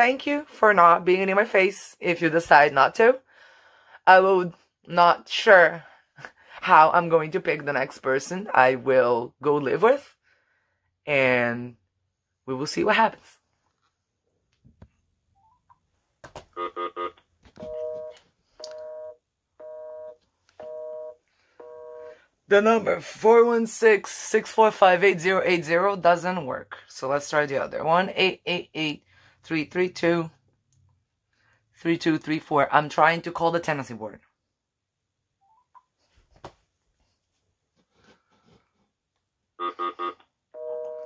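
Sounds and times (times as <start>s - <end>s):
phone busy signal: 16.6s - 22.2s, 39.6s - 41.0s.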